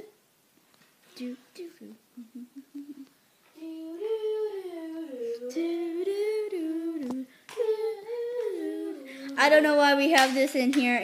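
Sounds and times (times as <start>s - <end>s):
girl humming: 1.2s - 9.5s.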